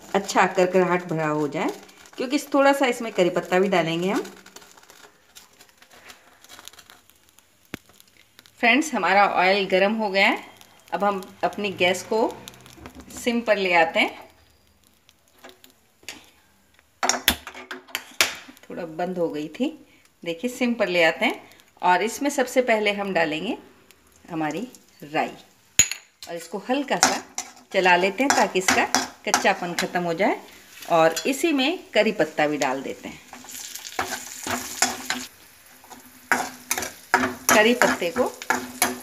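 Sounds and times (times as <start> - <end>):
spatula scraping and stirring: 0.0 - 8.5, 10.4 - 13.3, 26.9 - 39.0
leaves sizzling in hot oil: 0.0 - 17.3, 17.9 - 39.0.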